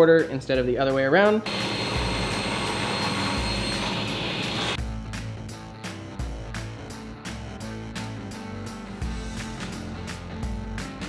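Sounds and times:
background music with steady beat: 0:00.0 - 0:11.0
table saw cutting plywood: 0:01.5 - 0:04.8.

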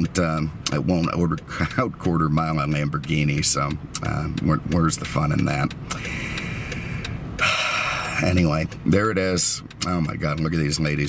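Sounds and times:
car engine idling: 0:00.0 - 0:11.0
light ticks: 0:00.0 - 0:11.0.

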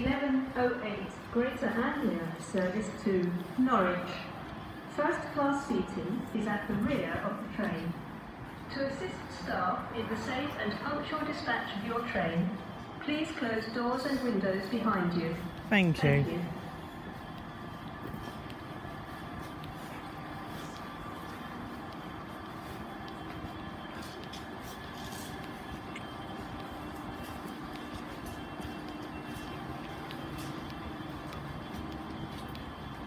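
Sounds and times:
faint steady tones: 0:00.0 - 0:33.0
train hum: 0:00.0 - 0:33.0.

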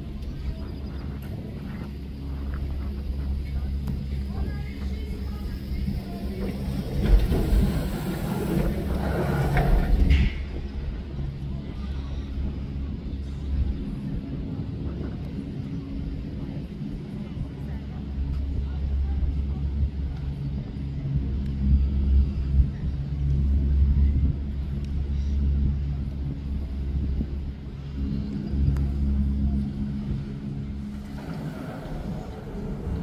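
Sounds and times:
gondola lift rumbling: 0:00.0 - 0:33.0
cable machine hum: 0:02.3 - 0:11.2, 0:28.0 - 0:33.0.

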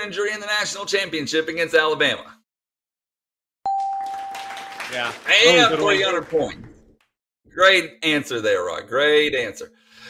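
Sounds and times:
bell-like ding: 0:03.7 - 0:04.9.

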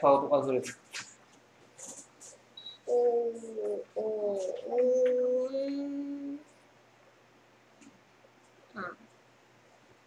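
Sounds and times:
person humming: 0:02.9 - 0:06.5.

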